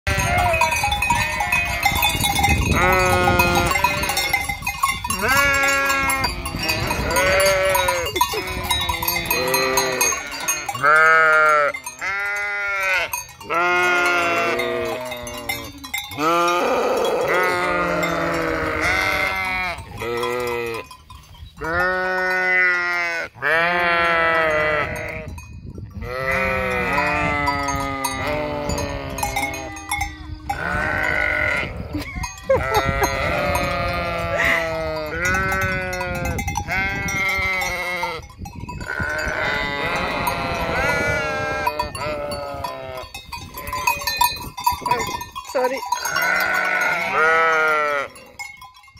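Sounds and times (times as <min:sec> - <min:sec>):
sheep bleating: 0:00.1 - 0:02.1, 0:02.7 - 0:04.4, 0:05.2 - 0:20.8, 0:21.6 - 0:25.3, 0:26.0 - 0:38.2, 0:38.8 - 0:43.9, 0:46.0 - 0:48.2.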